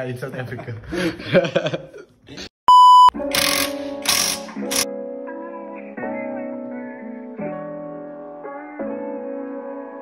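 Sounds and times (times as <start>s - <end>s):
steady high test tone beep: 2.7s - 3.2s.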